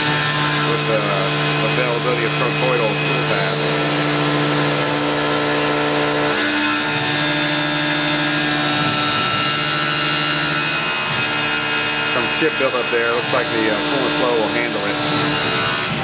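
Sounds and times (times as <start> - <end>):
milling machine cutting metal: 0.0 - 16.0.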